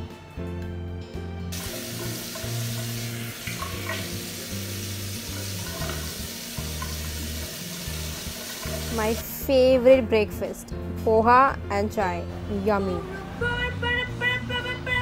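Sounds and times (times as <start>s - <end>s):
background music: 0.0s - 15.0s
running water hissing: 1.5s - 9.4s.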